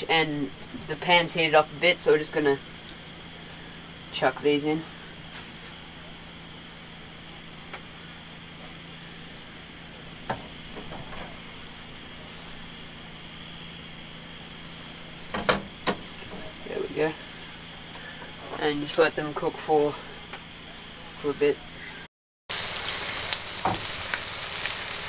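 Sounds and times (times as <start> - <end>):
fish sizzling in a pan: 22.5 - 25.0.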